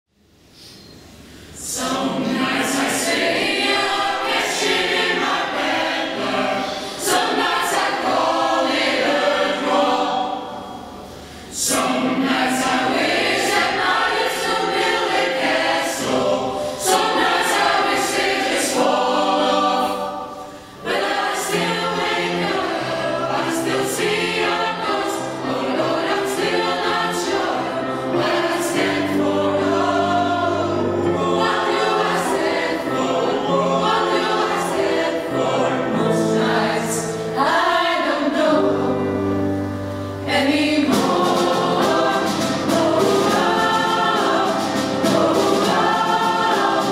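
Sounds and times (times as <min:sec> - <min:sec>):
choir singing: 0:01.6 - 0:46.9.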